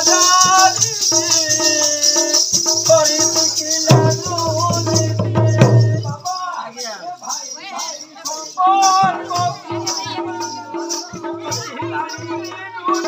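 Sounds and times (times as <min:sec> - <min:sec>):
person singing: 0:00.0 - 0:06.7, 0:07.5 - 0:13.0
shaker-like rattle: 0:00.0 - 0:13.0.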